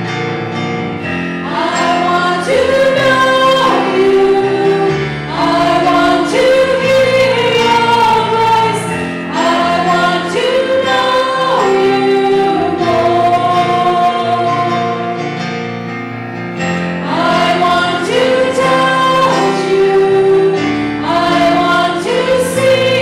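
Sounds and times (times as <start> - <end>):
instrumental accompaniment: 0.0 - 23.0
women singing in harmony: 1.4 - 15.2, 17.0 - 23.0.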